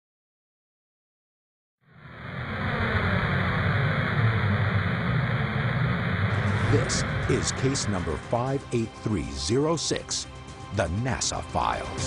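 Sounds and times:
deep rumble with hiss: 1.9s - 10.5s.

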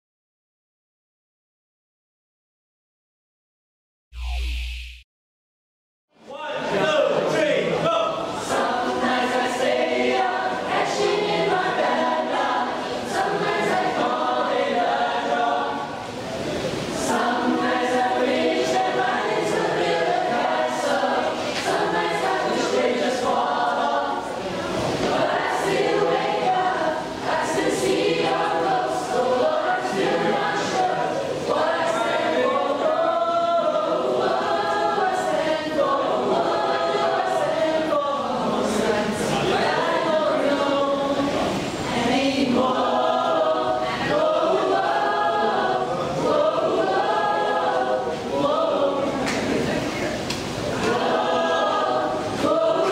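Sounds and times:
choir singing: 8.2s - 52.9s.

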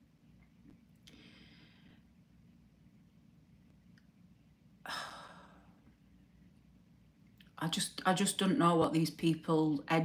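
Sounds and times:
woman sighing: 4.8s - 5.8s.

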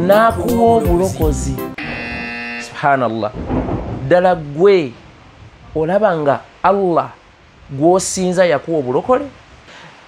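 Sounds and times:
man speaking: 0.0s - 1.8s, 2.7s - 3.4s
harsh buzzer: 1.8s - 2.8s.

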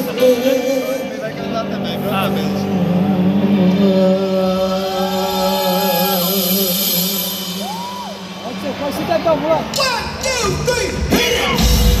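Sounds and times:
crowd voices: 0.0s - 12.0s
live rock band: 0.0s - 12.0s.

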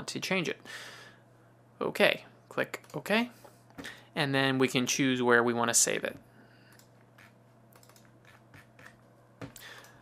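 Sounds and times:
low room hiss: 0.0s - 10.0s
computer keys typing: 6.7s - 9.1s.

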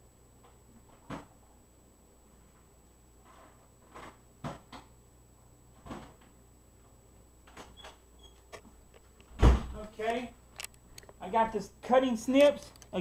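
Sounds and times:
loud deep thump: 9.4s - 9.8s.

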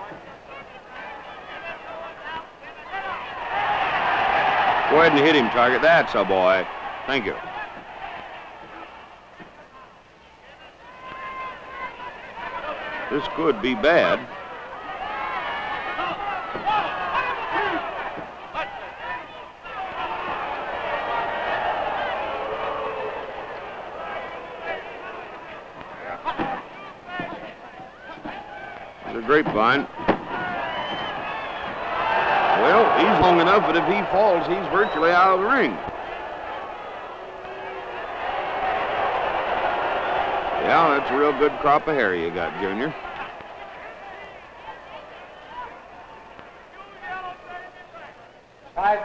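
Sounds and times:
arena crowd shouting: 0.0s - 49.0s.

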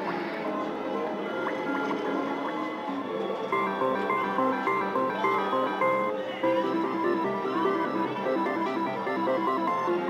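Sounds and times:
slot machine bonus music: 3.5s - 10.0s.

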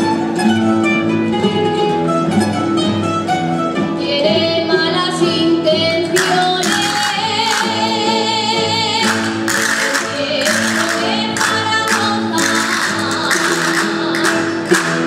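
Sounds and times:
person singing: 6.1s - 15.0s
plucked string band playing: 6.1s - 15.0s.

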